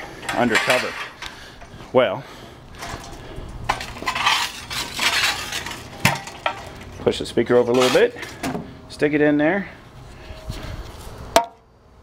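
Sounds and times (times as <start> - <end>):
hand truck rattling: 0.2 - 1.2.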